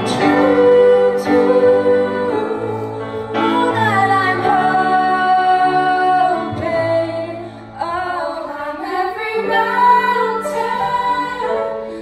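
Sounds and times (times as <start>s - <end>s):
children's choir singing: 0.0s - 11.8s.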